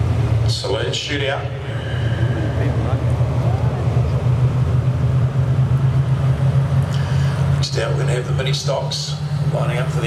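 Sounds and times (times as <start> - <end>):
car engines droning: 0.0 - 10.0.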